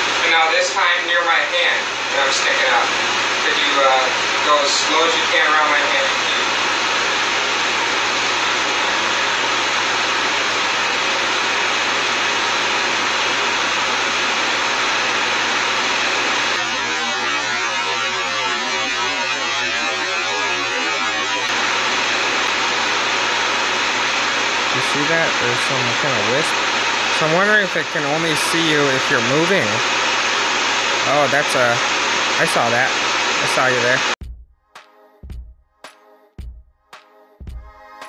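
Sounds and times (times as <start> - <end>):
loud steady hiss: 0.0 - 34.2.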